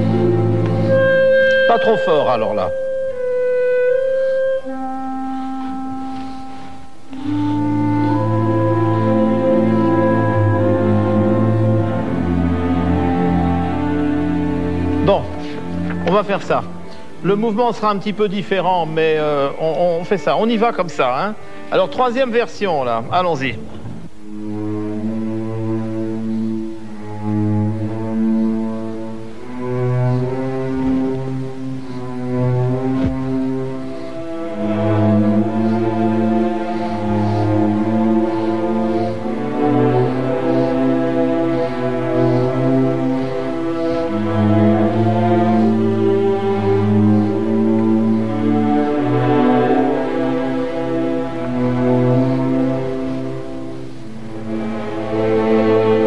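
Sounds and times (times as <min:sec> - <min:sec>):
orchestra playing held chords: 0:00.0 - 0:56.0.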